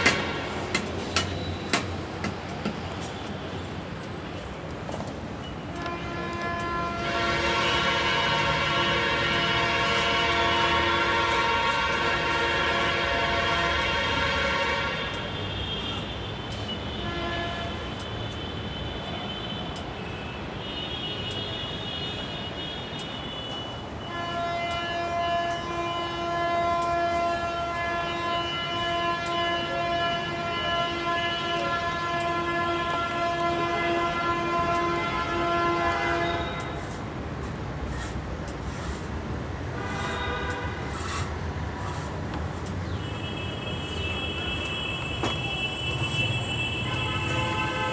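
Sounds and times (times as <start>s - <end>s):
short high horn tones: 5.7s - 16.0s
long horn blast: 5.7s - 16.2s, 24.1s - 37.0s, 39.8s - 42.1s, 43.0s - 47.9s
idling traffic rumble: 25.1s - 47.9s.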